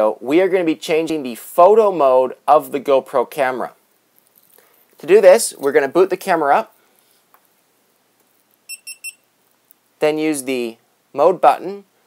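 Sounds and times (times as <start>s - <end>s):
camera beeps: 8.7s - 9.3s.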